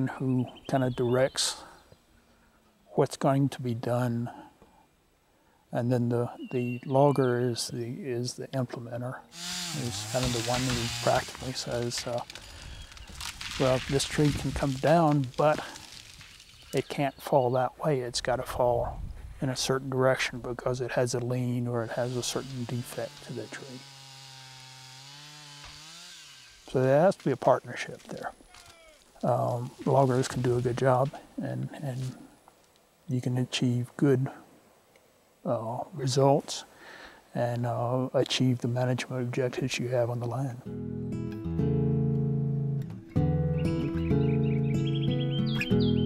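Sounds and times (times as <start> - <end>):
bird chirping: 0.2 - 2.9, 6.3 - 8.0, 43.4 - 46.0
chainsaw cutting wood: 9.3 - 16.6, 21.9 - 26.8
acoustic guitar music: 40.6 - 46.0.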